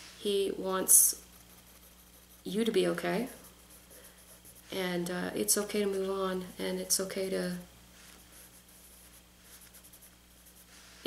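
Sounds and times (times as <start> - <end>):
pencil scratching on paper: 1.1 - 4.8, 8.1 - 10.8.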